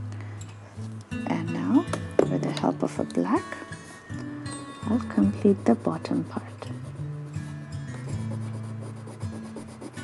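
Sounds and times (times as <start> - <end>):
pencil scratching on paper: 5.1 - 7.1, 7.9 - 10.0.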